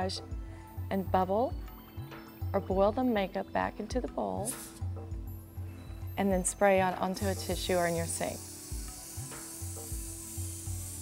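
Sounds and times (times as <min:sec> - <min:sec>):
background music with bass beat: 0:03.9 - 0:11.0
airbrush spraying hiss: 0:04.4 - 0:05.1, 0:06.3 - 0:11.0.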